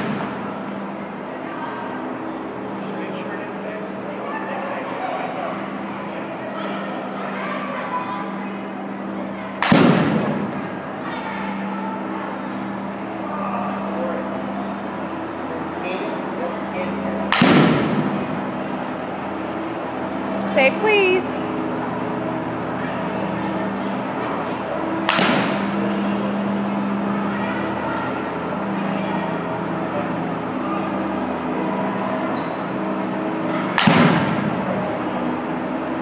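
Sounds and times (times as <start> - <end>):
steady low hum: 0.0 - 36.0
bat hitting ball: 17.3 - 18.2, 25.0 - 25.7, 33.7 - 34.5.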